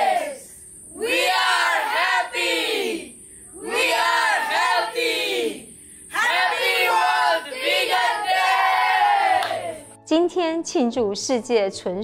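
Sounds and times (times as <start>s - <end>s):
children shouting: 0.0s - 0.4s, 1.0s - 3.0s, 3.6s - 9.9s
woman speaking: 10.1s - 12.0s.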